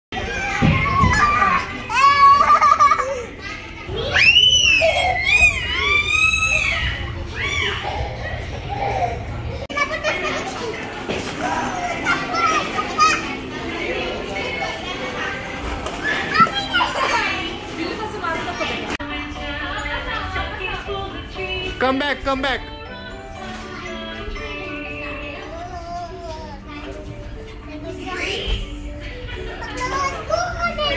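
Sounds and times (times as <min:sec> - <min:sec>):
children squealing and chattering: 0:00.2 - 0:19.0
children squealing: 0:04.0 - 0:09.0.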